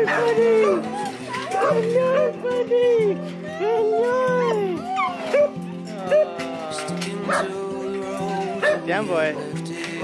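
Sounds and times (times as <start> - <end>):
dog whining and yipping: 0.0 - 2.4, 3.2 - 6.3, 8.1 - 9.5
background music: 0.0 - 10.0.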